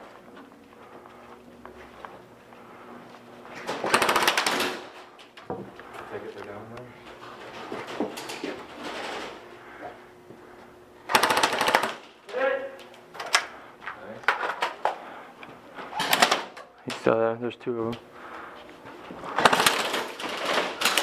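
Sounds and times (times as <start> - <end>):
airsoft guns firing bursts: 3.7 - 4.9, 11.1 - 12.1, 16.0 - 16.5, 19.4 - 21.0.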